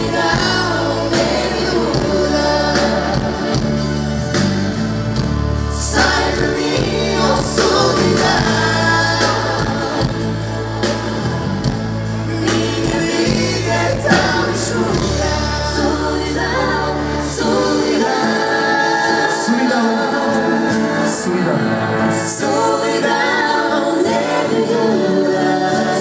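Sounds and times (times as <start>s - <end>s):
man singing lead vocal: 0.0s - 4.2s, 5.7s - 26.0s
live band playing pop song: 0.0s - 26.0s.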